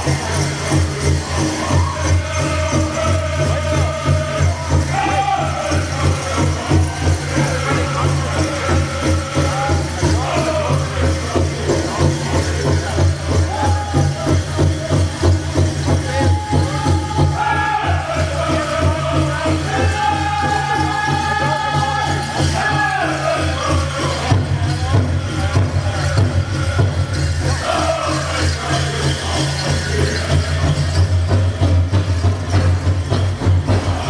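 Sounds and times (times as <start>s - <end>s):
fast big drum beat: 0.0s - 34.0s
high wavering group singing: 0.0s - 34.0s
leg bells jingling: 0.0s - 34.0s.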